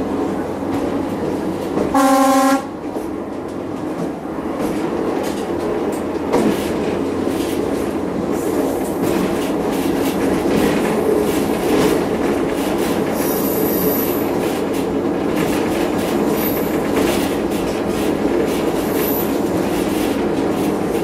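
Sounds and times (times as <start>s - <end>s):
train rumbling on track: 0.0s - 21.0s
wheels clicking over rails: 2.8s - 21.0s.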